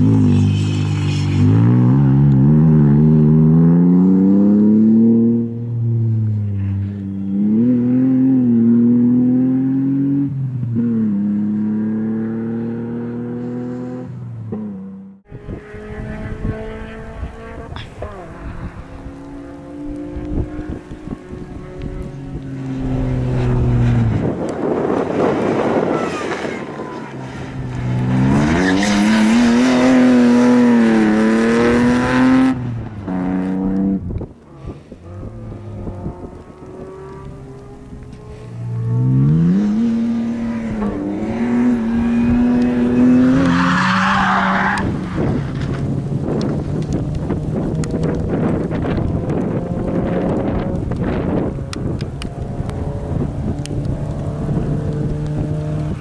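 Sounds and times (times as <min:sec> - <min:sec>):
wind rumble on microphone: 0:15.3 - 0:43.8, 0:44.4 - 0:56.0
race car engine revving: 0:15.3 - 0:56.0.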